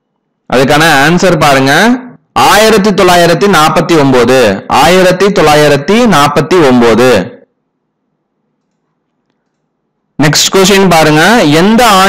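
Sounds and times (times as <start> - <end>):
man's voice: 0.5 - 7.4, 10.2 - 12.0.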